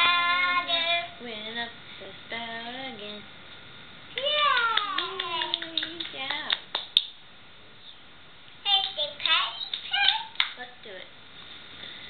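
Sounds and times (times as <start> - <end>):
sharp hand claps: 4.2 - 7.2, 8.7 - 10.6.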